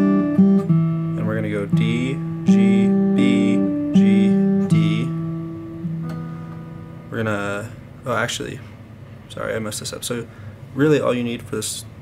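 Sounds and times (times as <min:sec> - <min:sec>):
acoustic guitar fingerpicked: 0:00.0 - 0:08.8.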